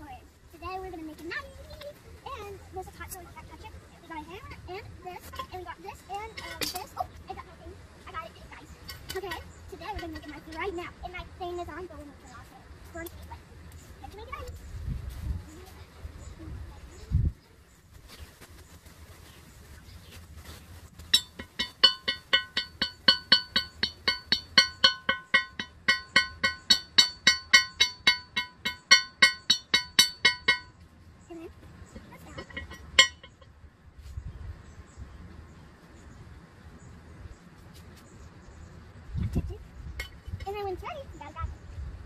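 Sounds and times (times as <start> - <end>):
hammer striking steel anvil: 21.2 - 30.8, 32.4 - 33.4.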